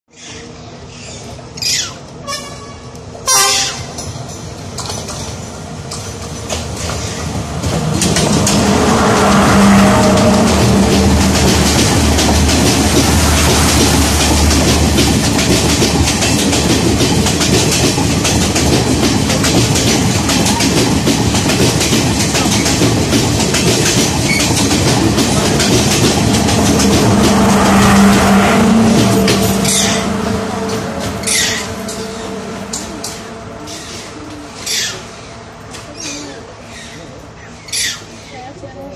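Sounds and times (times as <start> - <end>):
diesel train engine hum: 0.1 - 38.9
rushing train wheel noise: 0.2 - 38.9
train horn toots: 2.2 - 4.0, 8.4 - 11.3, 26.4 - 35.0.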